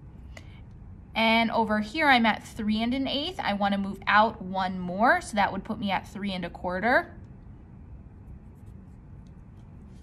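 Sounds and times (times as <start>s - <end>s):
marker scratching on card: 8.3s - 10.0s.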